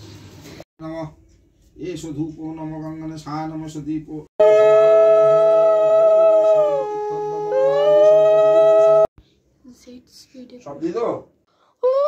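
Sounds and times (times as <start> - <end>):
conch shell blowing long notes: 4.4 - 9.1.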